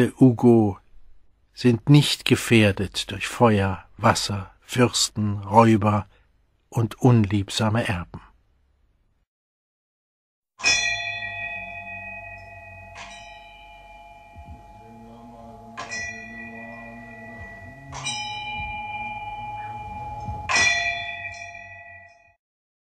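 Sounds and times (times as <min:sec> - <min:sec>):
bells ringing: 0:10.6 - 0:22.4
low steady hum: 0:11.0 - 0:21.9.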